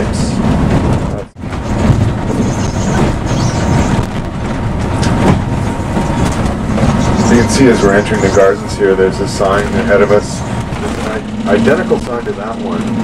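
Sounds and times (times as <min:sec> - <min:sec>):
coach engine and road rumble: 0:00.0 - 0:13.0.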